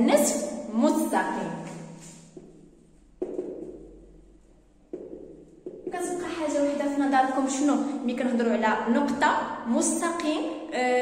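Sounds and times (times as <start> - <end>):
marker knocking on whiteboard: 1.7 - 6.6.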